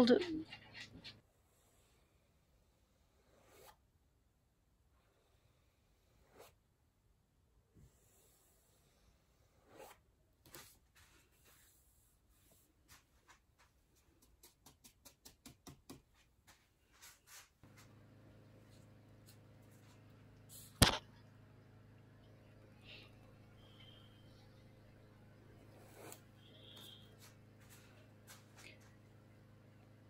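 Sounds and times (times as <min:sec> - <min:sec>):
brush strokes on wet paint: 0:16.5 - 0:18.0
steady low hum: 0:17.6 - 0:30.0
sharp click: 0:20.8 - 0:21.0.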